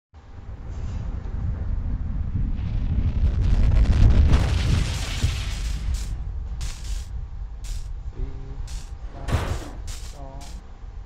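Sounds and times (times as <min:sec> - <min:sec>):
low rumble: 0:00.2 - 0:11.0
sharp crackles: 0:02.5 - 0:08.0, 0:08.6 - 0:10.6
loud crash impact: 0:04.0 - 0:08.0, 0:08.7 - 0:10.6
roaring hiss: 0:05.1 - 0:10.6.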